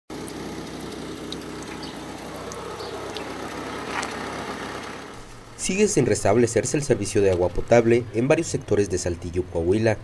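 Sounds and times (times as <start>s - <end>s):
low engine hum: 0.1s - 10.0s.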